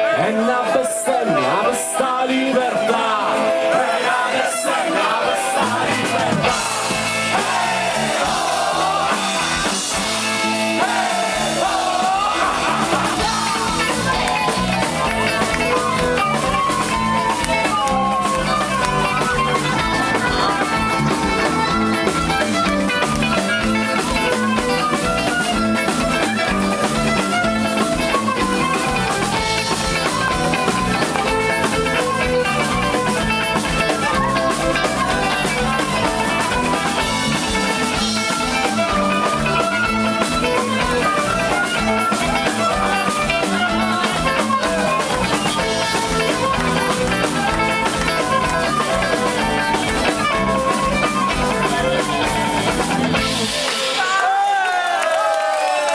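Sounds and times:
drum kit: 0:05.0 - 0:54.4.

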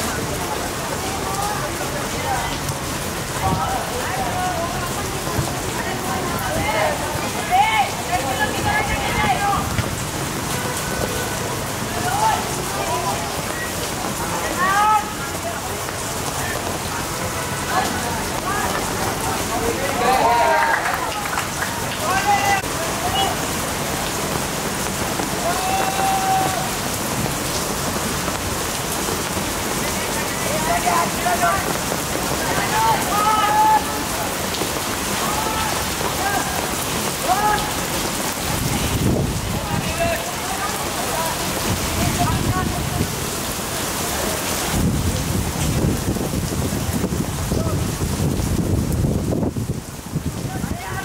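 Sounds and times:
voices calling out: 0:00.0 - 0:44.8
heavy rain: 0:00.0 - 0:51.0.

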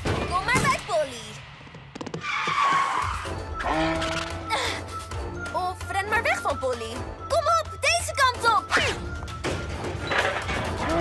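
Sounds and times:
cartoon background music: 0:02.7 - 0:11.0.

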